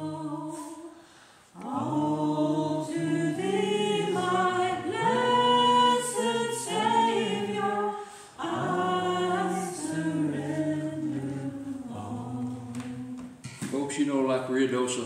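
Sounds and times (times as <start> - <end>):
congregation singing a hymn: 0.0 - 13.8.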